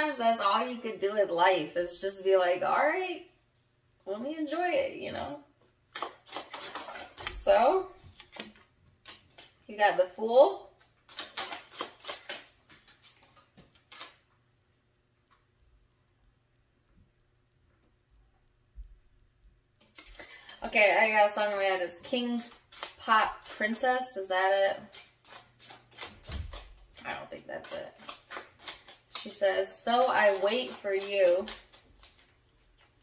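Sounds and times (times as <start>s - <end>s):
cards shuffled and flicked: 5.9s - 9.6s, 10.7s - 14.3s, 19.8s - 24.2s, 24.8s - 33.0s.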